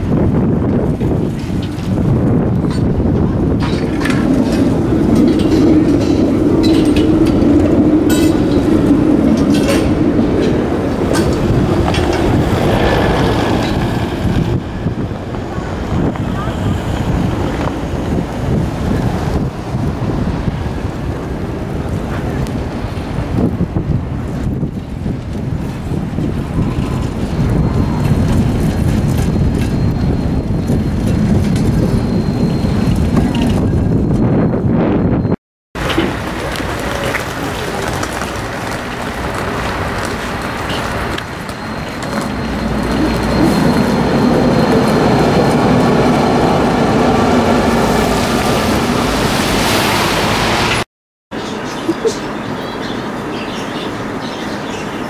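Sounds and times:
tram motor hum: 0:00.0 - 0:50.8
city traffic rumble: 0:00.0 - 0:55.0.

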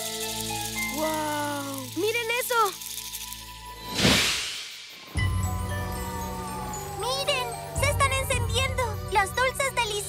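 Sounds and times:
whoosh sound effect: 0:03.8 - 0:05.4.

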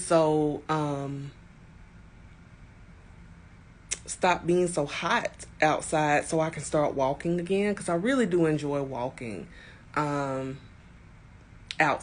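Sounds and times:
woman's voice: 0:00.0 - 0:01.4, 0:03.9 - 0:10.7, 0:11.7 - 0:12.0
faint low background hum: 0:00.0 - 0:12.0.

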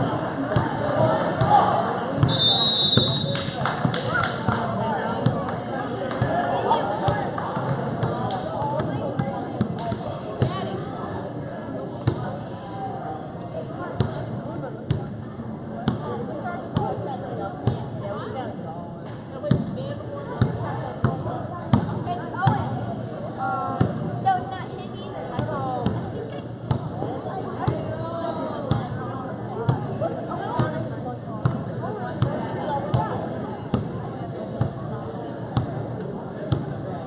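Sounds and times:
murmur of crowd chatter: 0:00.0 - 0:37.0.

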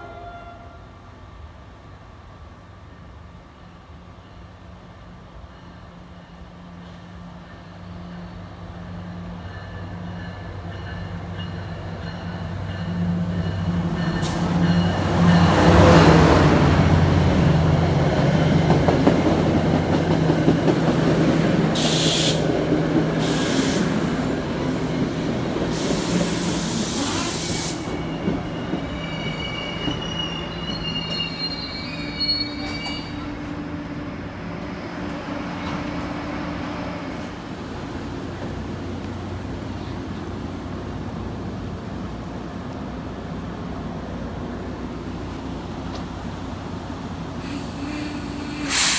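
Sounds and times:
passenger coaches rolling past: 0:00.0 - 0:48.9
diesel locomotive droning: 0:05.9 - 0:48.9
brake and wheel squeal: 0:26.4 - 0:33.4.

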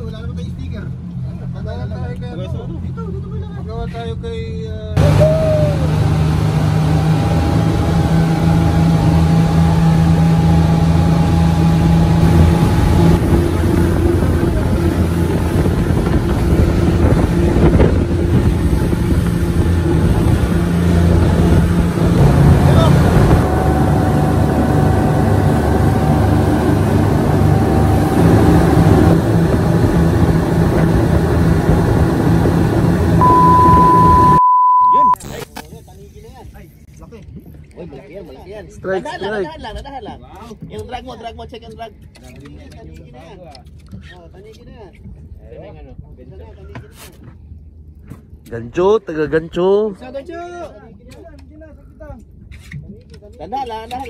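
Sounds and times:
boat engine drone: 0:00.0 - 0:35.2
test-tone beep: 0:33.2 - 0:35.2.

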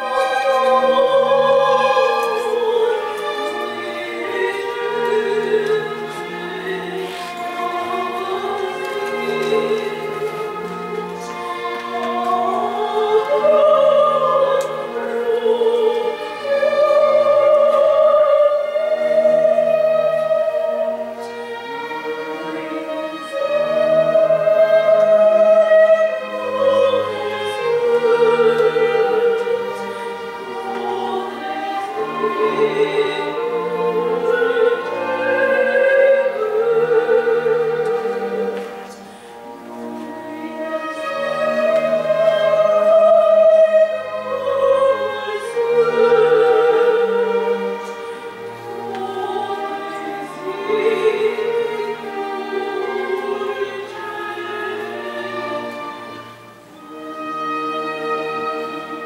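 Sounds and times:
string orchestra: 0:00.0 - 0:59.0
woman singing operatic: 0:00.0 - 0:59.0.

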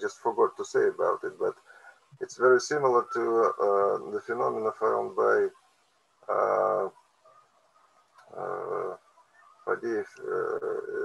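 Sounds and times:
man saying uhh: 0:02.3 - 0:05.5, 0:06.3 - 0:06.9, 0:08.3 - 0:09.0, 0:09.7 - 0:11.0.

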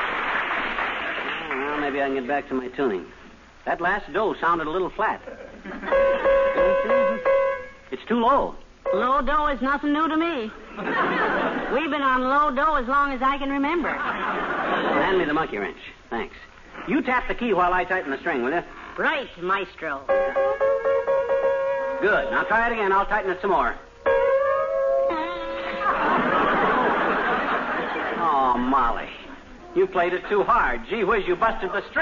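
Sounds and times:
piano key struck repeatedly: 0:05.9 - 0:07.8, 0:20.1 - 0:22.7.

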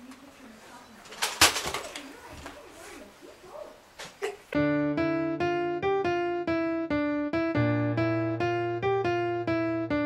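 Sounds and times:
electric piano music: 0:04.6 - 0:10.0.

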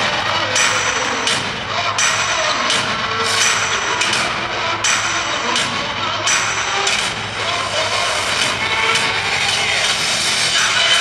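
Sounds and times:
intro music over loudspeakers: 0:00.0 - 0:11.0.

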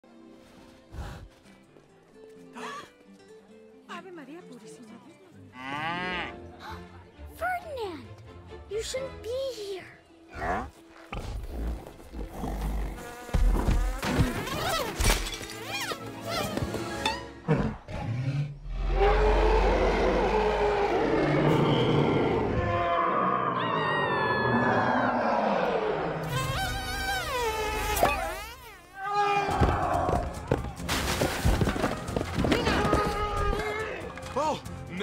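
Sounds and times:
cartoon bee buzzing: 0:12.1 - 0:15.0, 0:26.2 - 0:29.0
cartoon bumblebee buzzing: 0:26.2 - 0:28.9.

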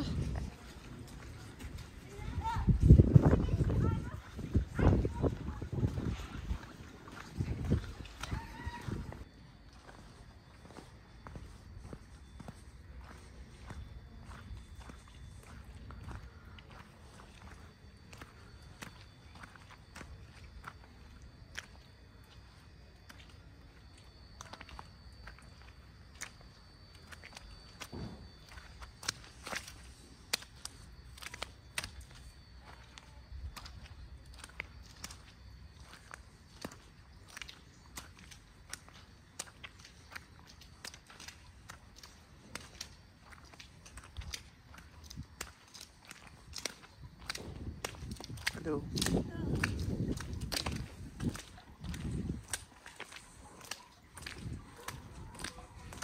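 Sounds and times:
footsteps on slushy road: 0:00.0 - 0:56.0.

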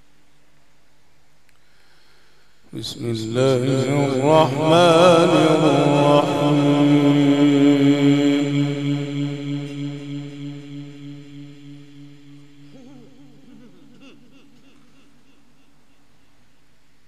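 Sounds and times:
man chanting into microphone: 0:02.7 - 0:12.6.

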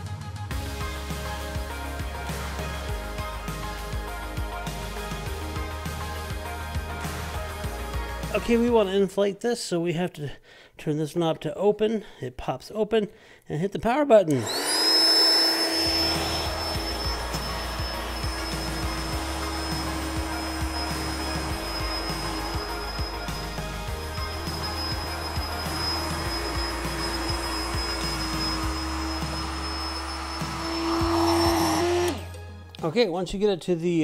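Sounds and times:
electric air pump humming: 0:14.4 - 0:32.3
thin high whine: 0:14.8 - 0:32.3.

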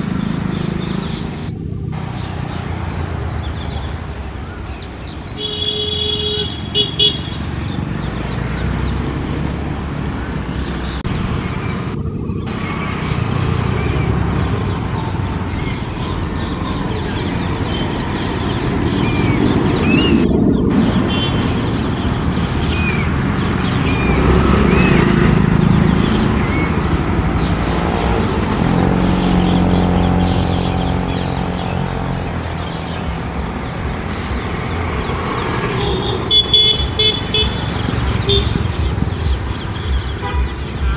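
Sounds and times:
traffic rumble: 0:00.0 - 0:40.9
car horn toots: 0:05.4 - 0:07.4, 0:35.8 - 0:38.7.

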